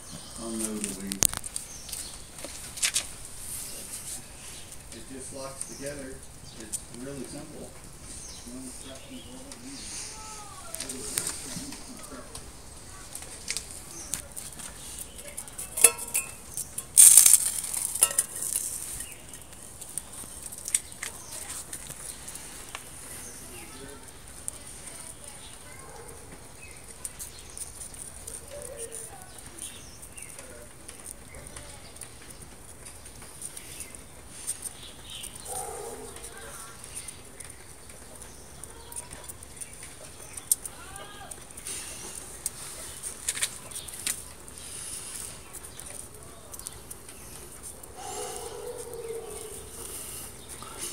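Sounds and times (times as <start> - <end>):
wood fire crackling and hissing: 0.0 - 50.9.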